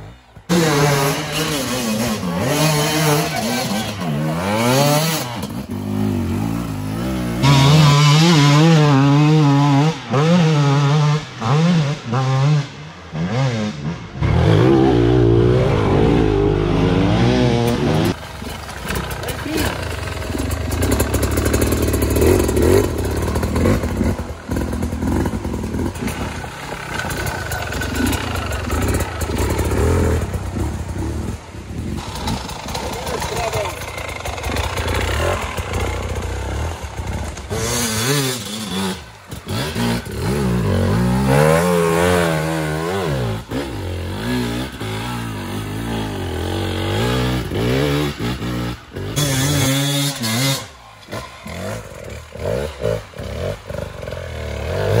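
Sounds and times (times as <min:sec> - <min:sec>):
motorcycle engines revving: 0:00.0 - 0:55.0.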